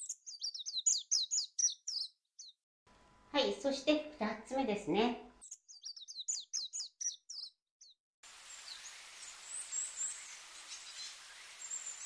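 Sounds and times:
bird chirping rapidly: 0.0 - 2.5, 5.4 - 8.0
steady hiss: 8.2 - 12.0.

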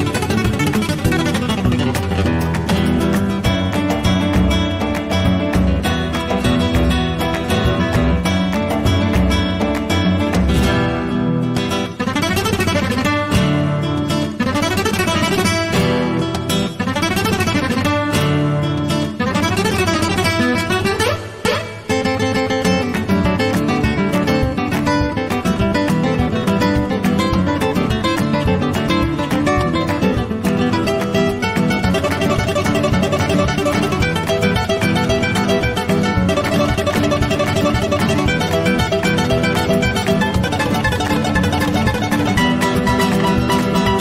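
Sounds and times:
acoustic guitars playing: 0.0 - 44.0.

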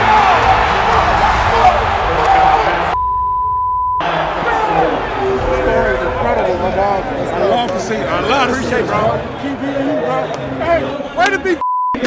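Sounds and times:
stadium crowd: 0.0 - 3.0, 4.0 - 12.0
censor bleep: 3.0 - 4.0, 11.6 - 12.0.

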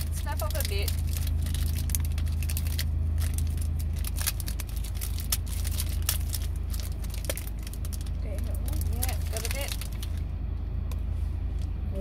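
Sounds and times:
wrapper crackling: 0.0 - 10.3
car hum: 0.0 - 12.0.

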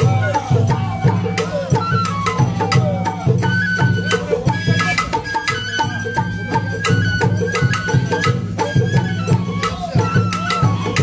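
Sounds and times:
bamboo flute high notes: 0.0 - 11.0
taiko drums: 0.0 - 11.0.

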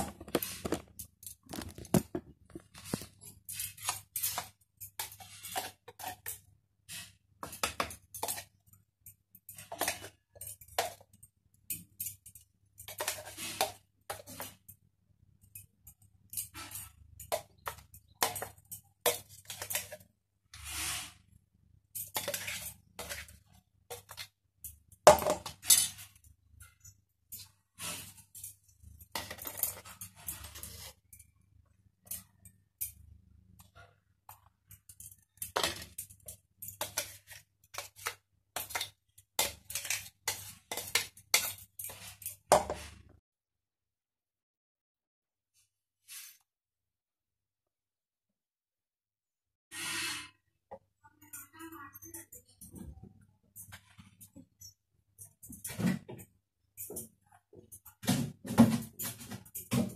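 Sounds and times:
spoon scraping metal jar: 0.0 - 8.8, 9.4 - 11.1, 11.7 - 14.7, 15.4 - 24.3, 25.4 - 31.3, 33.6 - 43.0.

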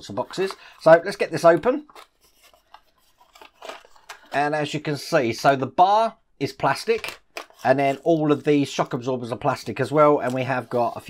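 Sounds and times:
scratchy rustles: 2.0 - 4.1.

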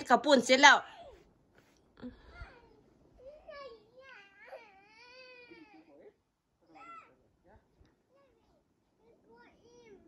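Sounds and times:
child crying: 2.2 - 6.0
small child wailing: 3.3 - 6.1.

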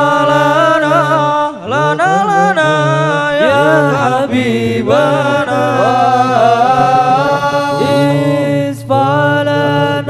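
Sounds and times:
men chanting devotional song: 0.0 - 10.0.

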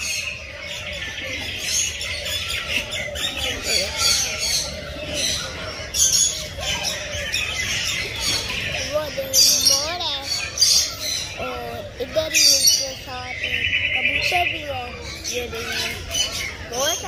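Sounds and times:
birds chirping and squawking: 0.0 - 17.0
loud bird squawks: 0.0 - 17.0.

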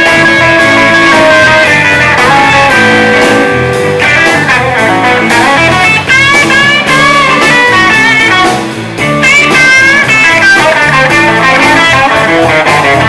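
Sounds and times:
bass guitar: 0.0 - 13.0
drums: 0.0 - 13.0
electric guitar lead: 0.0 - 13.0.

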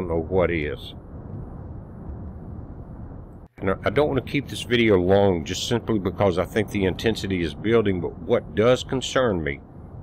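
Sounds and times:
volcanic eruption rumbling roar: 0.0 - 10.0.

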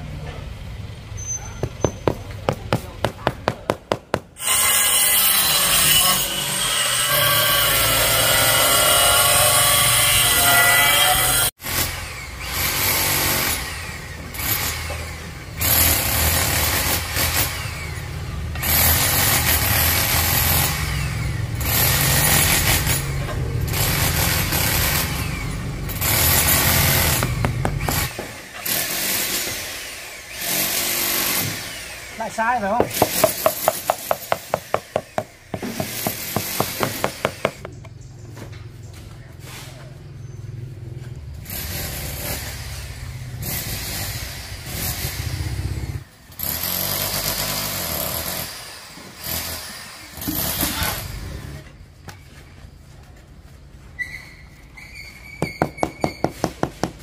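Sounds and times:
loud rasping strokes: 1.6 - 12.0, 23.7 - 37.7
rubber mallet knocking tile: 32.8 - 37.7.

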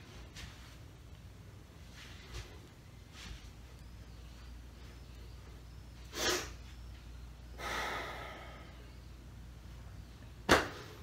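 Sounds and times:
sharp loud breath burst: 7.6 - 8.7
person exhaling: 7.6 - 8.9.

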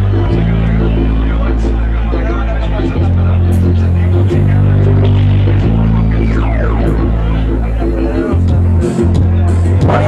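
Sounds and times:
deep sustained bass notes: 0.0 - 10.0
live band playing: 0.0 - 10.0
sound gliding down in pitch: 4.6 - 8.4.

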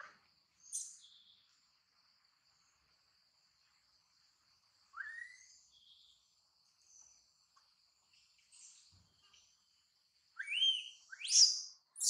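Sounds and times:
insect drone: 0.0 - 12.0.

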